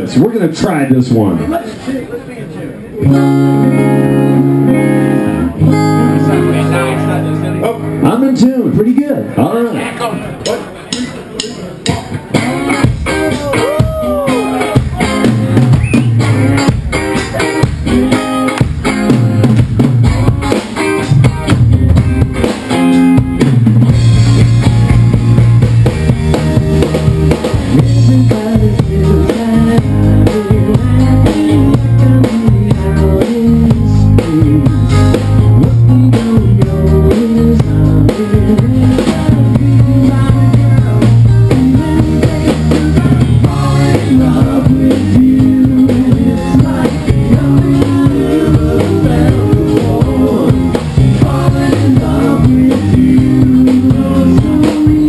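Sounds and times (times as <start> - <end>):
live rock band playing: 2.9 - 9.0, 10.3 - 55.0
bass drum and snare: 10.9 - 55.0.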